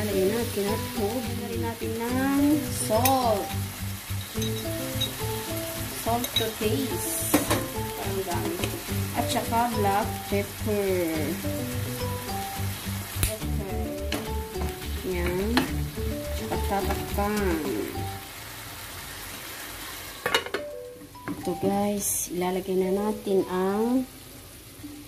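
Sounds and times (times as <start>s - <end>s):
background music with steady beat: 0.0s - 18.2s
vegetables sizzling in a frying pan: 0.0s - 25.0s.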